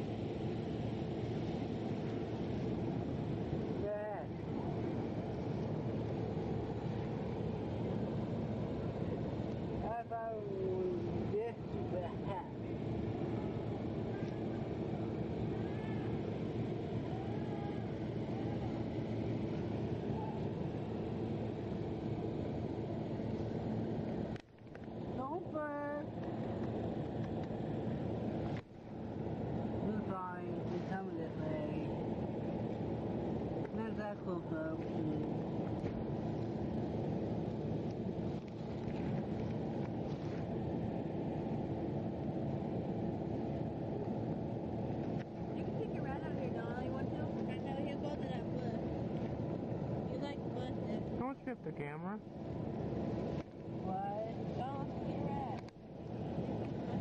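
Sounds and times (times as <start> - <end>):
faint hum: 0.0 - 57.0
outdoor background rumble: 0.0 - 57.0.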